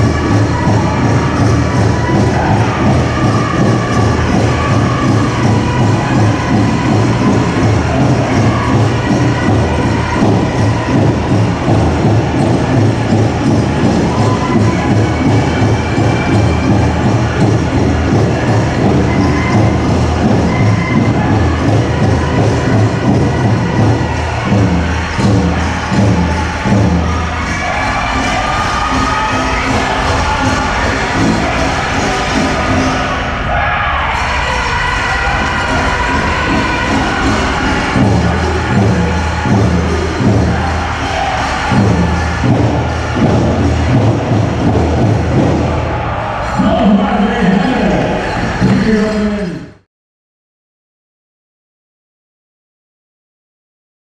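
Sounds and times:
large drum beating: 0.0 - 33.0, 34.8 - 48.9
group singing in high voices: 0.0 - 48.7.

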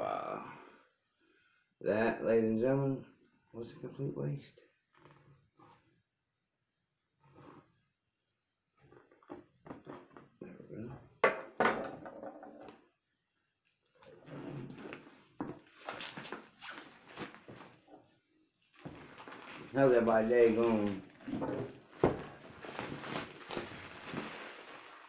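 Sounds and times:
plastic wrap crinkling: 13.6 - 25.0.

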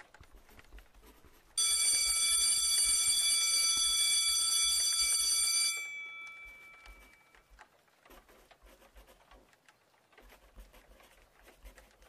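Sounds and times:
school bell ringing: 1.6 - 7.3.

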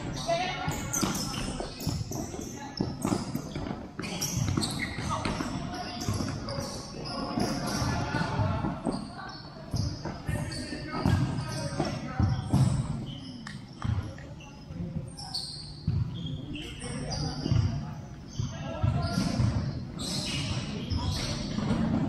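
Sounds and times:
ball thudding on indoor court: 0.0 - 9.1, 9.7 - 14.2, 18.4 - 22.0.

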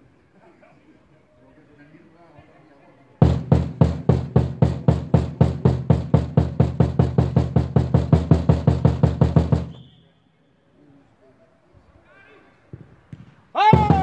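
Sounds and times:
drum beaten hard: 3.2 - 9.8, 13.6 - 14.0.

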